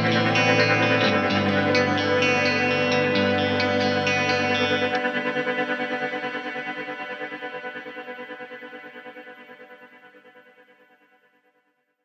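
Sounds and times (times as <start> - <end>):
electric guitar chord with reverb: 0.0 - 9.5.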